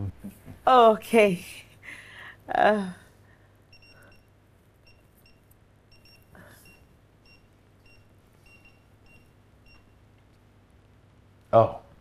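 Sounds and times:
keypad beeps: 0:03.7 - 0:10.0.

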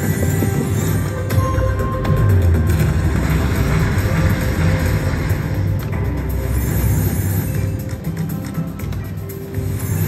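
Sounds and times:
slot machine game music: 0:00.0 - 0:10.0.

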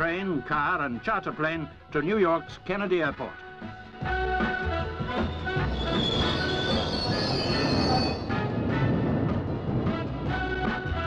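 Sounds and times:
rhythmic background music: 0:00.0 - 0:11.0
underground train running: 0:04.0 - 0:11.0
high wheel squeal: 0:05.1 - 0:08.9.

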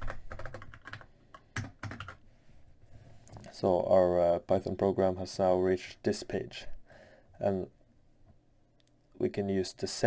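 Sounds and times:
computer keyboard typing: 0:00.0 - 0:02.2.

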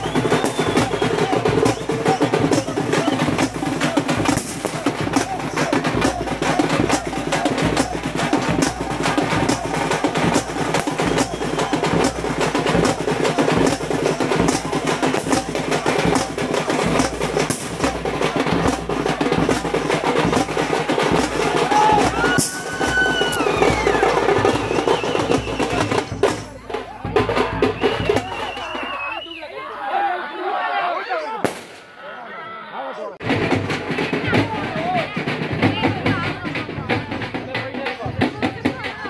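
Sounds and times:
fast rolling folk drums: 0:00.0 - 0:29.3, 0:33.2 - 0:39.0
crowd voices: 0:00.0 - 0:39.0.

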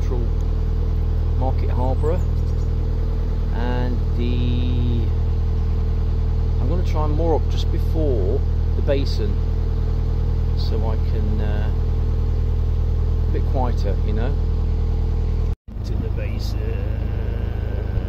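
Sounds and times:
boat engine droning: 0:00.0 - 0:18.0
short voice sounds: 0:16.6 - 0:18.0.

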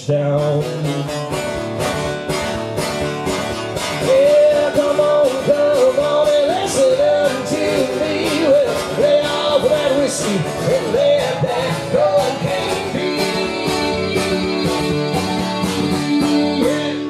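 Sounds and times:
strummed acoustic guitar: 0:00.0 - 0:17.0.

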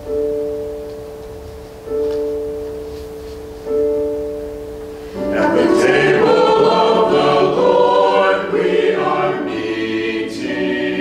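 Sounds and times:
piano chords ringing: 0:00.0 - 0:11.0.

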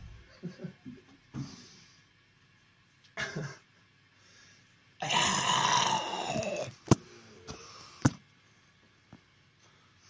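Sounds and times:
person's rough throat sound: 0:05.0 - 0:06.8.

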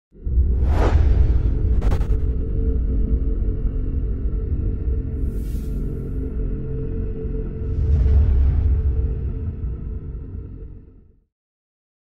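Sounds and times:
deep bass rumble: 0:00.2 - 0:11.0
whoosh: 0:00.4 - 0:02.8.

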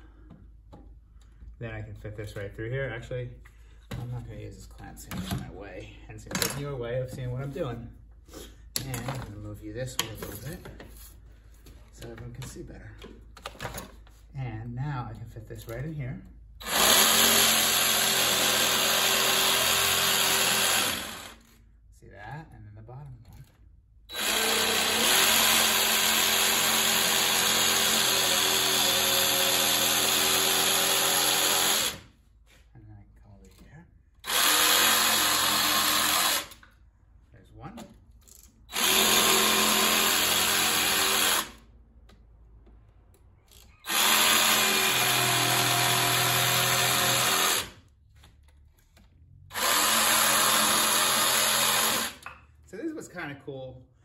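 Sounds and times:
jigsaw cutting wood: 0:16.6 - 0:21.5, 0:24.1 - 0:32.1, 0:34.2 - 0:36.6, 0:38.7 - 0:41.6, 0:43.8 - 0:47.8, 0:49.5 - 0:52.3.

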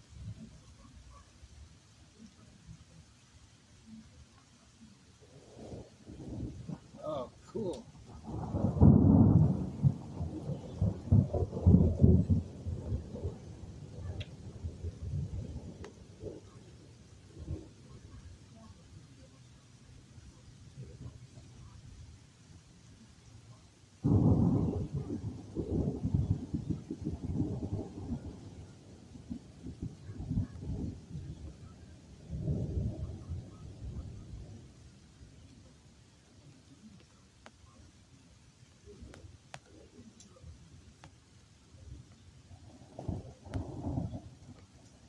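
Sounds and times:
thunder rumbling: 0:05.3 - 0:22.1, 0:24.0 - 0:35.7, 0:41.7 - 0:45.0.

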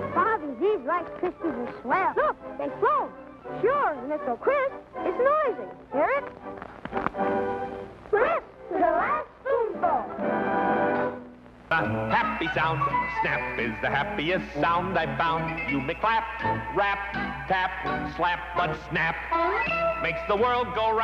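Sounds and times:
light music: 0:00.0 - 0:21.0.

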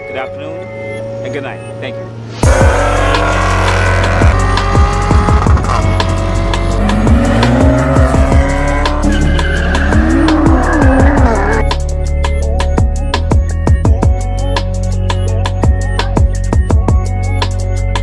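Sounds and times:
car engines revving: 0:00.0 - 0:11.9
electronic music with heavy bass: 0:00.9 - 0:18.0
tyres squealing: 0:07.0 - 0:11.6.

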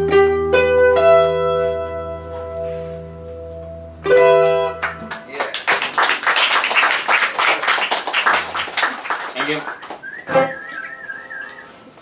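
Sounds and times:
whistled note: 0:09.6 - 0:11.9.

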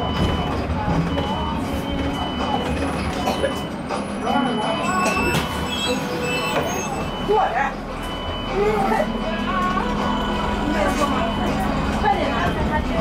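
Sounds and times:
passengers talking: 0:00.0 - 0:13.0.

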